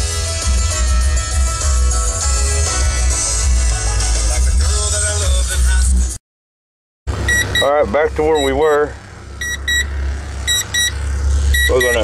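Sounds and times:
electronic chime beeping: 0:07.3 - 0:08.7, 0:09.4 - 0:09.9, 0:10.5 - 0:12.0.

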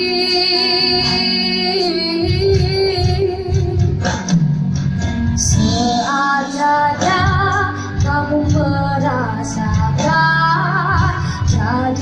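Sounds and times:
child singing with vibrato: 0:00.0 - 0:03.8, 0:05.5 - 0:12.0
backing music: 0:00.0 - 0:12.0.

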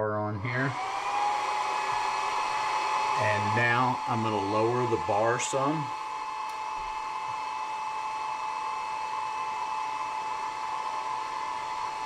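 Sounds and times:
laser cooling fan whirring: 0:00.0 - 0:12.0.

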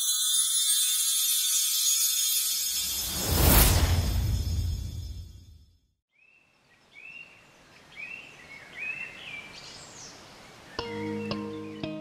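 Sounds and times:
shimmering sparkle effect: 0:00.0 - 0:05.8.

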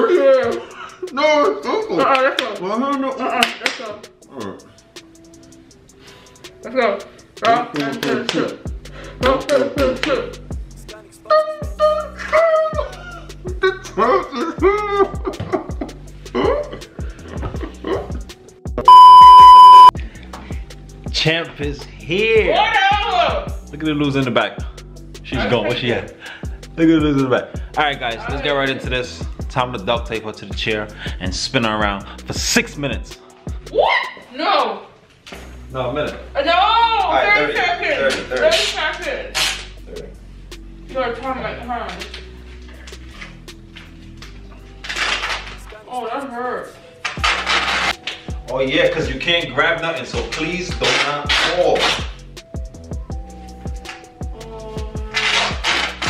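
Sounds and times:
music with steady beat: 0:00.0 - 0:33.9, 0:48.0 - 0:56.0
electronic bleep: 0:18.9 - 0:19.9
duct tape ripping off roll: 0:39.4 - 0:39.8, 0:44.8 - 0:45.7, 0:47.0 - 0:48.2, 0:50.7 - 0:52.2, 0:55.0 - 0:56.0.

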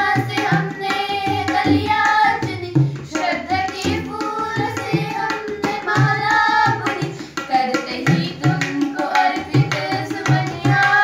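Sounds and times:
girls singing together: 0:00.0 - 0:11.0
tabla drum strokes: 0:00.0 - 0:11.0.

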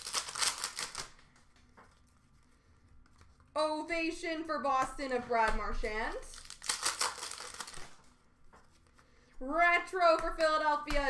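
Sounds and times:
cards being flicked through: 0:09.7 - 0:11.0.

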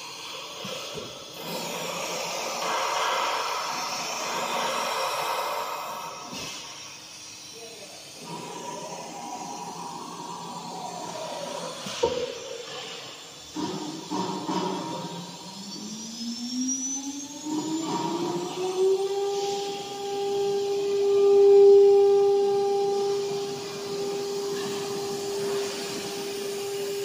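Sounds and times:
router spindle cutting board: 0:07.2 - 0:27.0.

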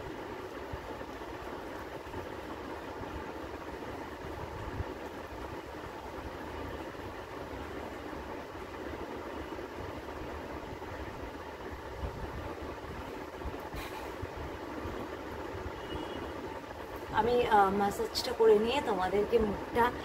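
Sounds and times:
mechanical hum: 0:00.0 - 0:20.0.

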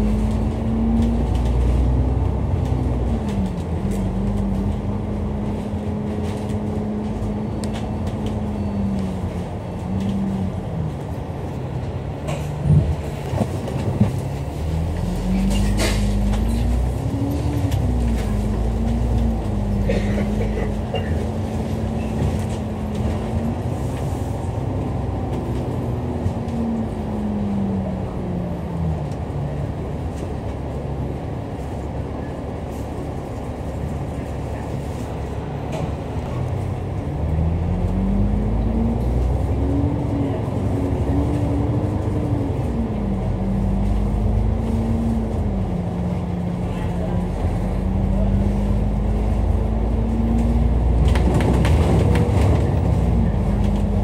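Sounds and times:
bus engine running: 0:00.0 - 0:54.0
road rumble: 0:00.0 - 0:54.0.

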